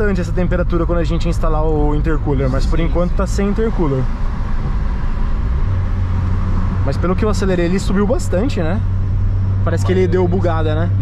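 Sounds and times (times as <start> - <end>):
car engine drone: 0.0 - 11.0
road noise: 0.0 - 11.0.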